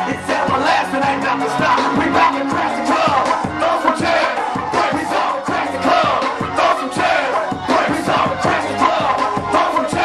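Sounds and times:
rapping over a loud beat: 0.0s - 10.0s
crowd yelling along: 1.6s - 10.0s.

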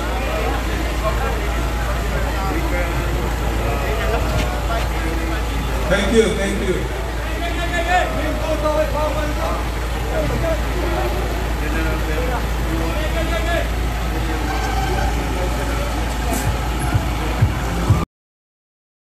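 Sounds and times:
indistinct voices talking: 0.0s - 18.1s
vehicle engines idling: 0.0s - 18.1s.

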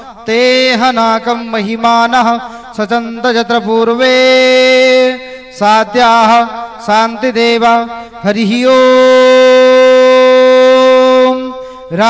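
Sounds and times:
man chanting a long note: 8.4s - 12.0s.

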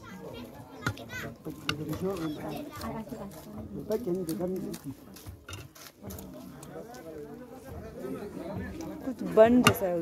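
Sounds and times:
children's voices: 0.0s - 1.4s
people talking: 6.0s - 10.0s.

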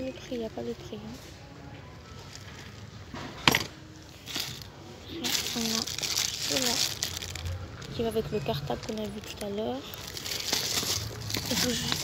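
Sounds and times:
plastic wrapping crinkling: 4.1s - 12.0s.

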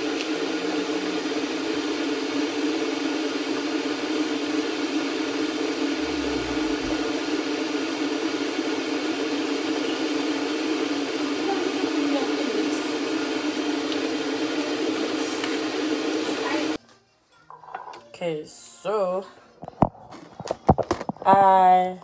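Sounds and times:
kitchen appliance whirring: 0.8s - 16.8s
short low rumble: 5.9s - 7.3s.

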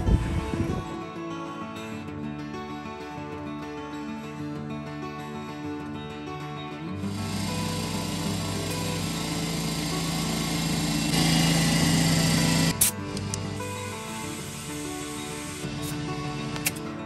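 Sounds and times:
air compressor running: 7.1s - 16.8s.

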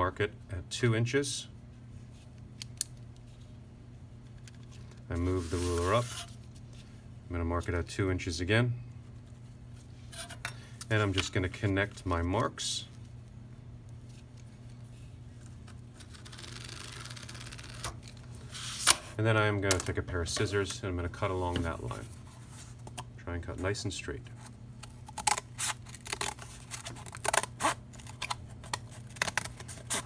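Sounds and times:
low steady hum: 0.0s - 30.0s.

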